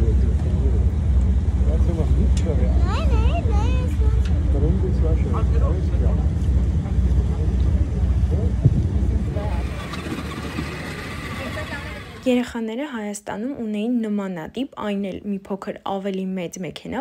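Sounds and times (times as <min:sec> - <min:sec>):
people's voices: 0:01.6 - 0:12.5
wind buffeting microphone: 0:06.6 - 0:12.2.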